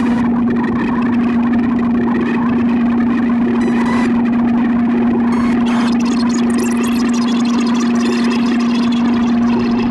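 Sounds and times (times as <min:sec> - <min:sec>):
low synthesizer drone: 0:00.0 - 0:09.9.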